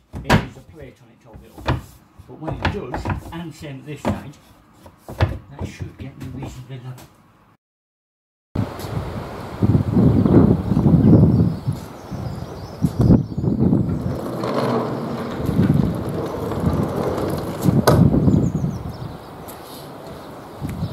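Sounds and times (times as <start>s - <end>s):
sliding door rolling rumble: 12.0s - 19.3s.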